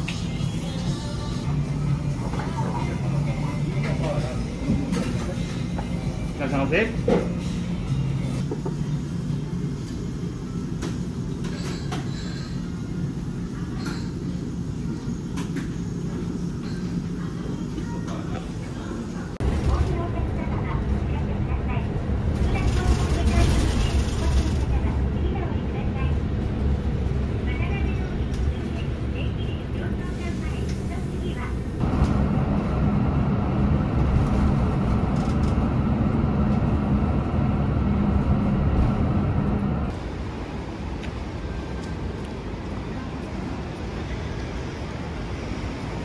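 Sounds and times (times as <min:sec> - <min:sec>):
bus engine and road noise: 0:00.0 - 0:46.0
street noise: 0:00.0 - 0:46.0.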